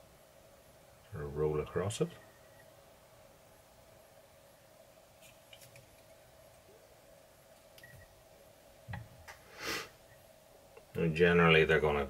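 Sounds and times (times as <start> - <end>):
faint steady hum: 0.0 - 12.0.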